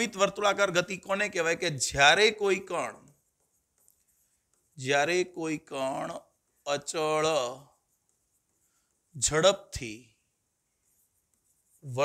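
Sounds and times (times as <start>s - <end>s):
man speaking: 0.0s - 3.1s, 4.8s - 7.8s, 9.1s - 10.2s, 11.8s - 12.0s
chalk scratching on blackboard: 0.0s - 9.8s, 10.6s - 12.0s.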